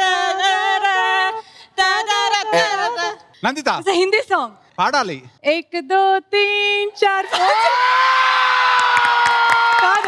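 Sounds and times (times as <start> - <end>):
woman singing: 0.0 - 3.3, 5.5 - 7.7
audience cheering: 7.3 - 10.0.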